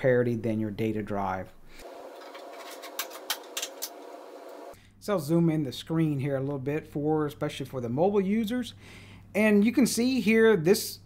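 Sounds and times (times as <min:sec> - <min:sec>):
faint steady hum: 0:01.2 - 0:05.2
cables clicking and rattling: 0:02.2 - 0:04.0.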